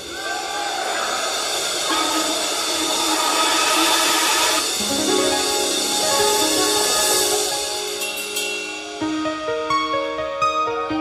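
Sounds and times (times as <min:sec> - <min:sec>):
cymbals wash: 0:00.0 - 0:09.6
keyboard chords: 0:04.6 - 0:11.0.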